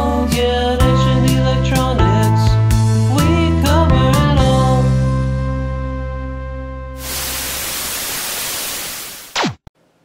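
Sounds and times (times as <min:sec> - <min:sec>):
static hiss: 0:07.0 - 0:09.6.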